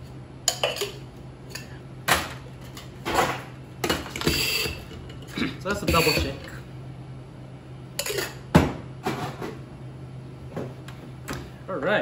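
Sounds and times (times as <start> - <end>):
glassware clinking: 5.8 - 6.5, 8.0 - 8.4.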